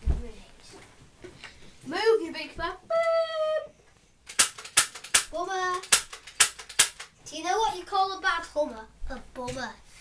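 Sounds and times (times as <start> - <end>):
sharp cracks: 4.3 - 7.2.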